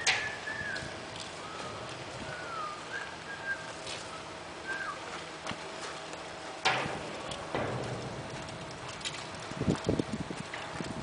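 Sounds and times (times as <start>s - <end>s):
dull low knocks: 6.6s - 11.0s.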